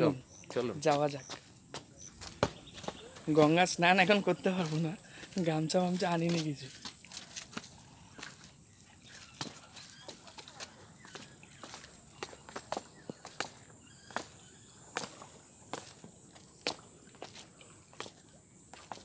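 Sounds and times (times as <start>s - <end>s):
footsteps walking: 0.0s - 19.0s.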